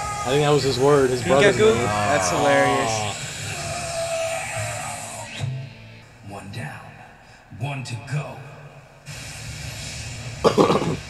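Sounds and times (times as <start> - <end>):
steady rushing hiss: 0.0 - 11.0
person coughing: 10.5 - 11.0.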